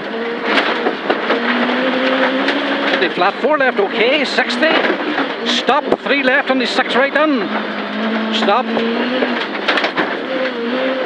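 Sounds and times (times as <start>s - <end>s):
car engine running hard: 0.0s - 11.0s
tyres rumbling on gravel: 0.0s - 11.0s.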